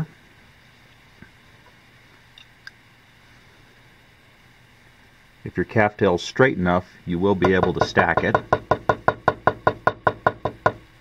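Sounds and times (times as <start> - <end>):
metal tapping on wooden tabletop: 7.4 - 10.8.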